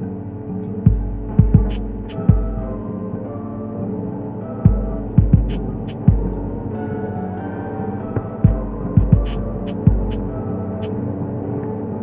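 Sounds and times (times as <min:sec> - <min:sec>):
electronic hum of stacked tones: 0:00.0 - 0:11.0
deep bass thumps: 0:00.9 - 0:02.8, 0:04.7 - 0:06.5, 0:08.5 - 0:10.3.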